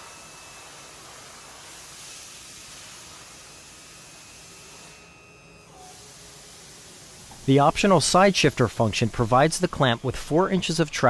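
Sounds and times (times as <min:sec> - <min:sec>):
high whine of motor drive: 0:00.0 - 0:11.0.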